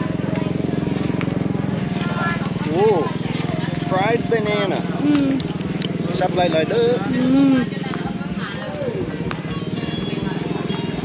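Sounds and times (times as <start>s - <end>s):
music: 7.6s - 11.0s.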